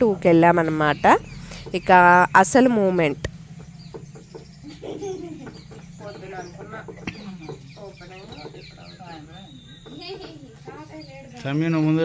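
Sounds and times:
steady low hum: 0.0 - 12.0
chickens clucking: 0.2 - 12.0.

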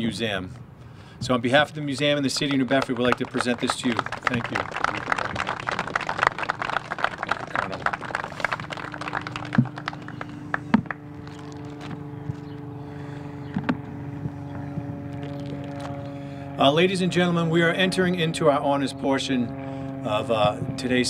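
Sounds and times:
dense crackle of noise: 10.8 - 12.0, 15.1 - 15.9.

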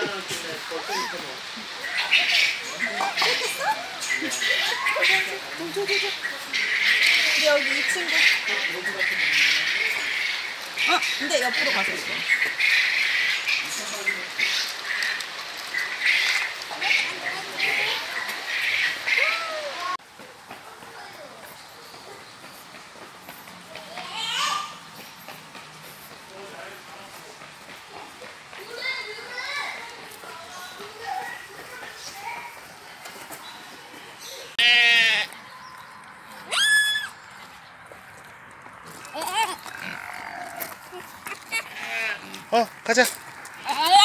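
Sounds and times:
farm animal bleating: 34.6 - 35.4, 41.5 - 42.4
small child calling and babbling: 43.6 - 44.0.

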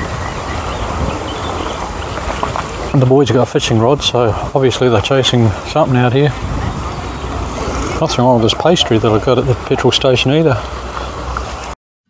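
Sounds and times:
wind buffeting microphone: 0.0 - 11.7.

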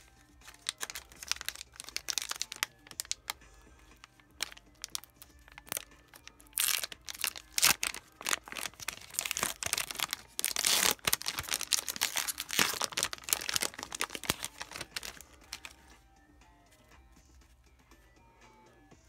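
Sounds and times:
foil wrapper crinkling and tearing: 0.4 - 3.4, 4.1 - 15.8.

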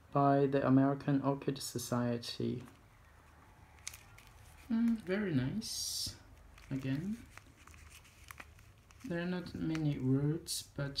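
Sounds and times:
plastic pot crinkling: 2.7 - 10.3.

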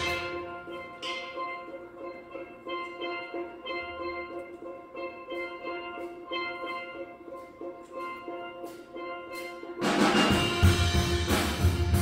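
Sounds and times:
steel band playing steel pans: 0.0 - 12.0.

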